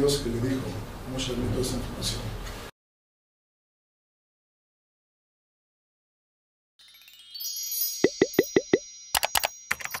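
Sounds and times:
ringing chime: 6.8s - 10.0s.

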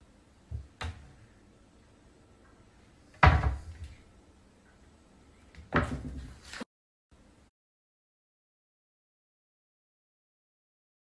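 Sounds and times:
cupboard doors banging: 3.2s - 3.7s.

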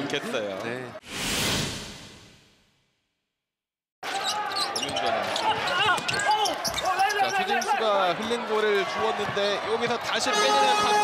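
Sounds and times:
voices in arena: 4.0s - 11.0s
shoe squeaks: 4.1s - 7.8s.

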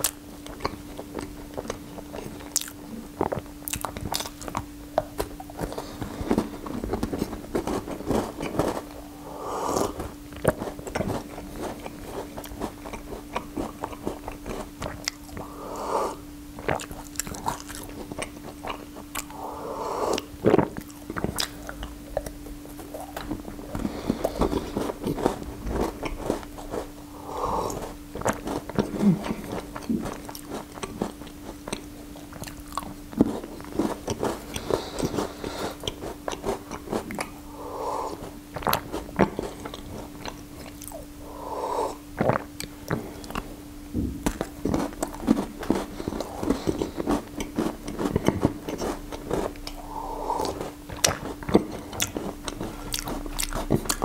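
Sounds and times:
chewing pastry: 0.0s - 43.5s, 44.2s - 54.0s
sipping and swallowing tea: 45.4s - 54.0s.

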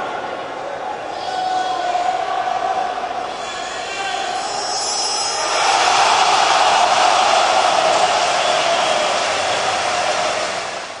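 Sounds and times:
stadium crowd roaring: 0.0s - 11.0s.

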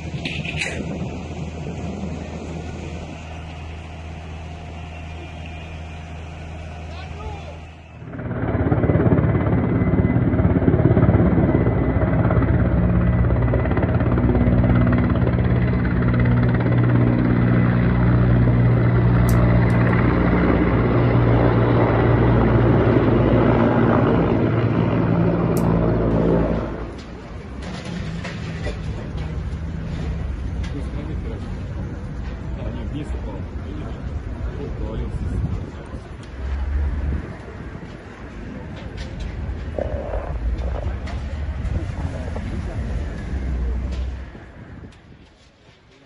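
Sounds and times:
helicopter drone overhead: 0.0s - 46.0s
steady background noise: 0.0s - 46.0s.

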